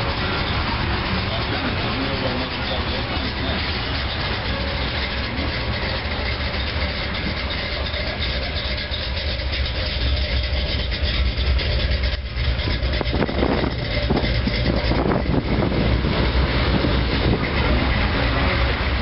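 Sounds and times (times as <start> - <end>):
car engine exhaust rumble: 0.0 - 19.0.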